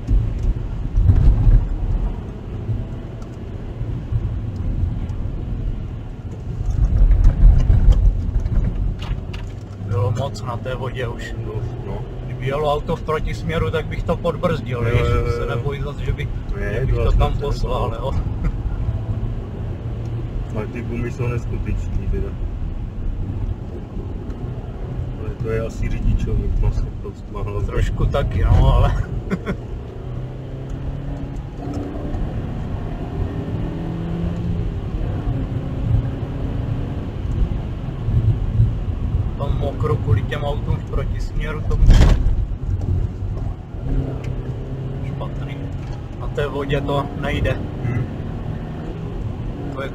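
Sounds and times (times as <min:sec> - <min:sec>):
car engine and road drone: 0:00.0 - 0:49.9
loud thump: 0:41.8 - 0:42.5.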